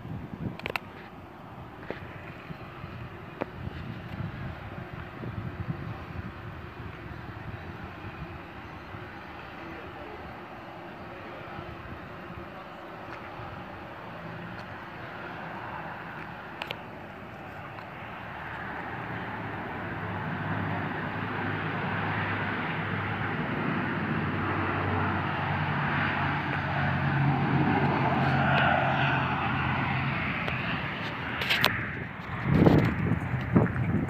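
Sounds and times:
turboprop engines running: 0:00.0 - 0:34.0.

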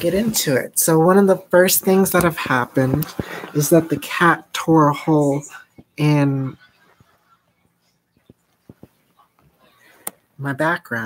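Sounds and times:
faint taps and clicks: 0:06.8 - 0:10.2.

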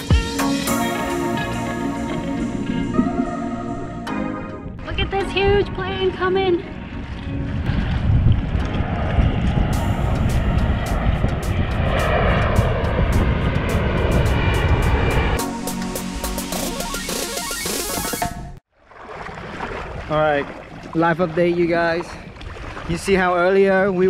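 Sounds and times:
background music: 0:00.0 - 0:07.7, 0:14.8 - 0:18.6
airplane engine rumble: 0:00.0 - 0:17.3.

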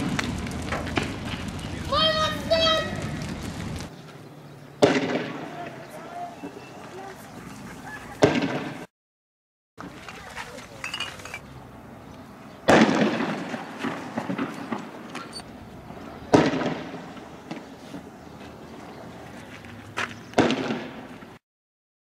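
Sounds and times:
tear gas rounds firing with echo: 0:04.8 - 0:05.9, 0:12.6 - 0:15.0, 0:16.3 - 0:17.6, 0:20.4 - 0:21.1.

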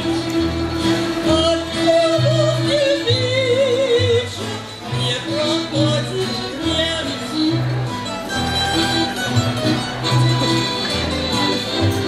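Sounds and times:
instrumental accompaniment: 0:00.0 - 0:12.0
woman singing folk song: 0:01.0 - 0:07.8.

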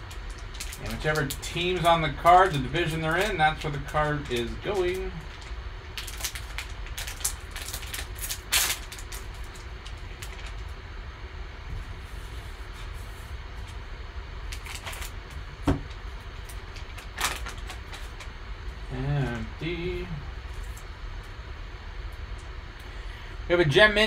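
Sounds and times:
foil wrapper crinkling: 0:00.0 - 0:10.8, 0:14.4 - 0:18.3
steady low hum: 0:00.0 - 0:24.0.

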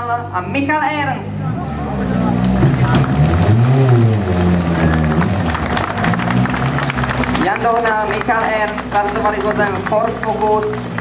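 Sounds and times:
rally car engine running: 0:00.0 - 0:11.0.

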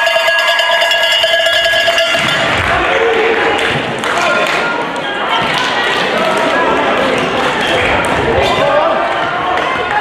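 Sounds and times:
cowbell clanging: 0:00.0 - 0:02.6
crowd cheering: 0:00.0 - 0:10.0.

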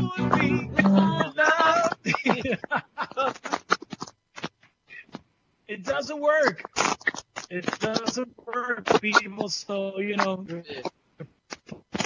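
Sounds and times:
men talking over video call: 0:00.0 - 0:03.6, 0:04.9 - 0:10.9
men laughing: 0:00.4 - 0:04.0.

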